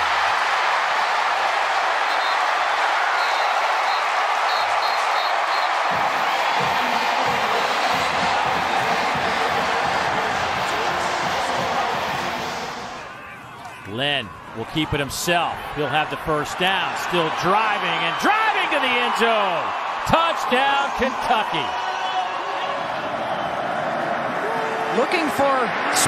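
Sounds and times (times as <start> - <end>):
stadium crowd cheering: 0.0 - 26.0.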